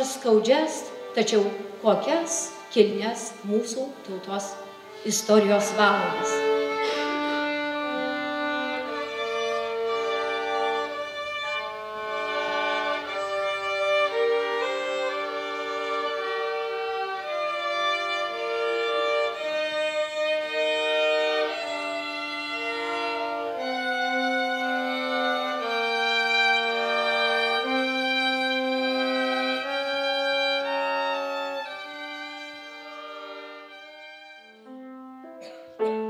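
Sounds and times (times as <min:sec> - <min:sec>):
violins playing: 0:00.0 - 0:36.0.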